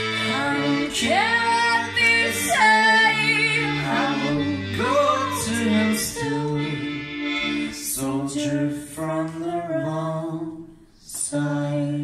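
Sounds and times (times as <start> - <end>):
accordion chords: 0.0 - 10.7
woman singing: 0.2 - 6.8.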